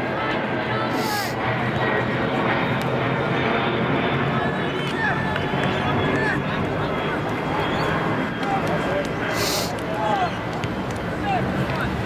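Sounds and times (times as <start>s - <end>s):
players calling and talking: 0.0s - 3.4s, 4.1s - 12.0s
steady outdoor rumble: 0.0s - 12.0s.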